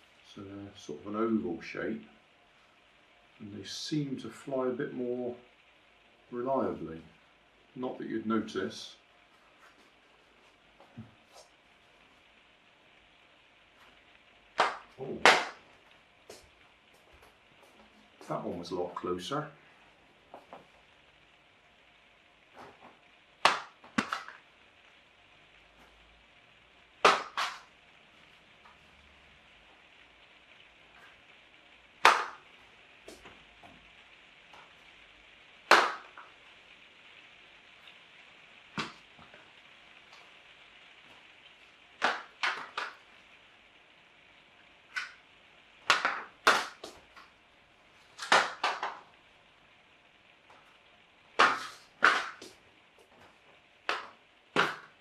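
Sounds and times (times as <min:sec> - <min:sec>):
faint steady hiss: 0:00.0 - 0:55.0.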